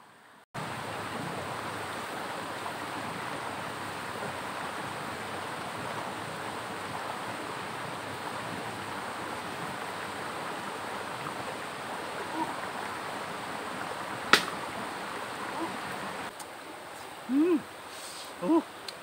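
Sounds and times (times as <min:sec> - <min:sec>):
river water rushing: 0:00.2 - 0:19.0
man exclaiming: 0:17.3 - 0:17.7, 0:18.4 - 0:18.7.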